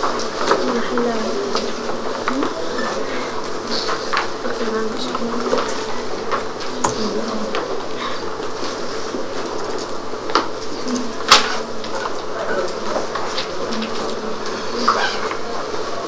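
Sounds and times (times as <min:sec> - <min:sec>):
students talking quietly: 0:00.0 - 0:16.0.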